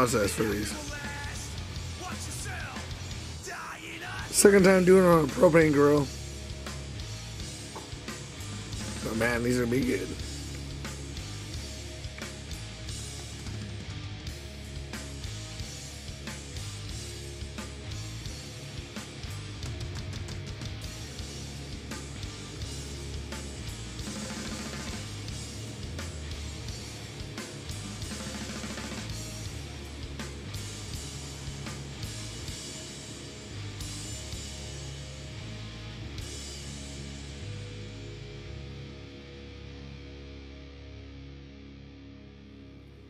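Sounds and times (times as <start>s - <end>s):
rock music with guitar and drums: 0.0s - 43.0s.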